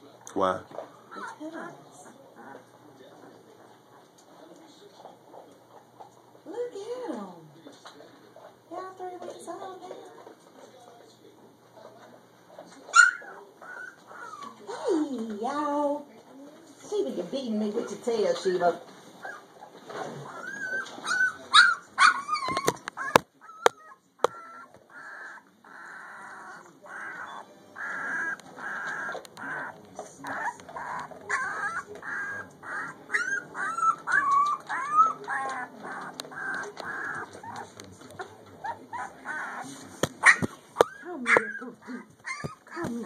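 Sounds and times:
puppies whimpering and squealing: 1.0 - 1.5, 12.9 - 14.7, 19.2 - 43.0.

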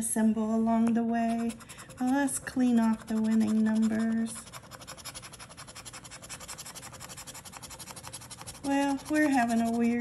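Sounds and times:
coin scratching lottery ticket: 1.2 - 10.0.

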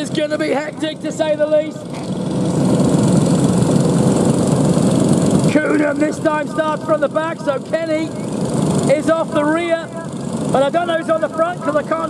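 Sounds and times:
racing kart engines droning: 0.0 - 12.0.

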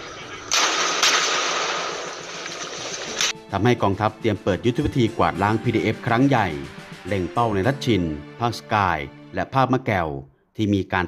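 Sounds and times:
sharp crack: 0.4 - 3.4
explosion: 0.5 - 3.3.

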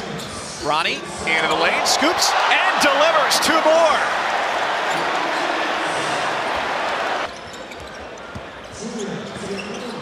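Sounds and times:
arena crowd noise: 0.0 - 10.0.

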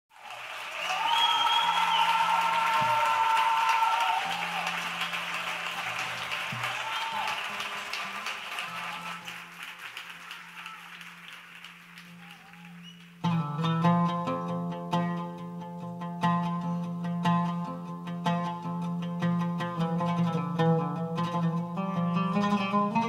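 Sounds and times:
audience applauding: 0.1 - 13.4.

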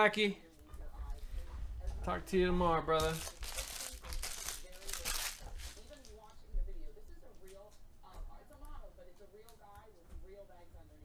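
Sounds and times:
plastic wrapping crinkling and tearing: 2.9 - 6.3.

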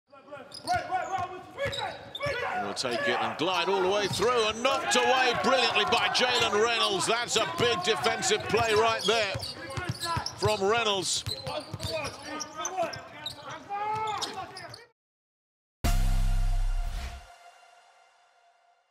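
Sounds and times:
broadcast voice: 2.6 - 13.1
basketball bouncing on court: 8.5 - 10.6, 11.2 - 12.2
bass-heavy jingle hit: 15.8 - 18.6.

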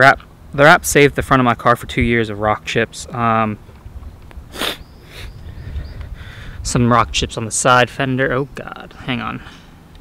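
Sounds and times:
sharp breath close to microphone: 4.5 - 6.6.

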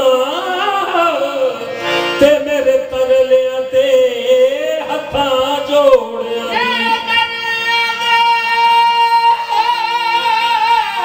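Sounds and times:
harmoniums playing: 0.0 - 11.0.

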